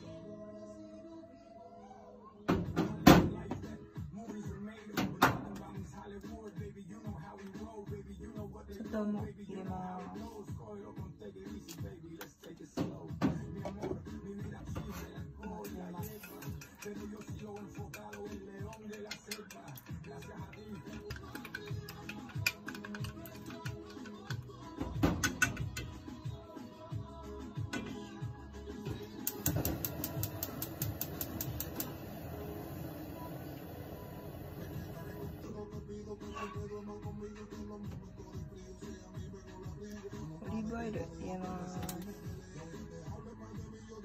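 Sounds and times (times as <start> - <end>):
background music: 0.0 - 44.0
chopsticks beating eggs in metal bowl: 15.1 - 24.6.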